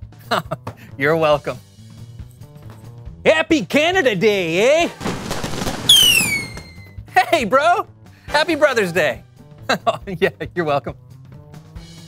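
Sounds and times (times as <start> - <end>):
firework crackling burst: 5.0 - 6.9
high falling whistle: 5.9 - 7.0.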